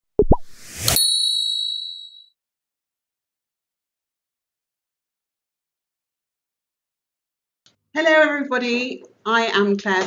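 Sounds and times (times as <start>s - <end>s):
bright high chime: 0.9s - 2.3s.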